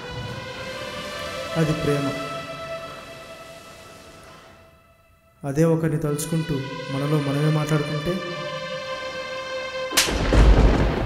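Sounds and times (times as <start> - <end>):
held music chord: 0.0 - 10.8
deep boom impact hit: 10.0 - 11.0.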